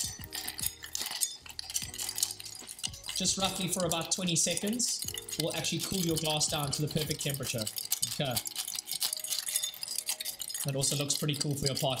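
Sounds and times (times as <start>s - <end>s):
bar spoon stirring ice: 0.0s - 12.0s
ice cubes clinking in a glass: 0.0s - 12.0s.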